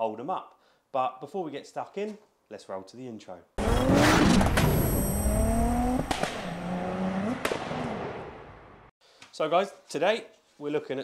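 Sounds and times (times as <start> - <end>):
car engine revving: 3.6 - 8.9.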